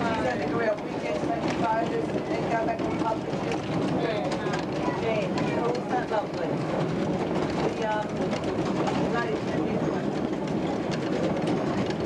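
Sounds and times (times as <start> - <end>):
faint clickety-clack: 0.0 - 12.0
train wheels rumbling on rails: 0.0 - 12.0.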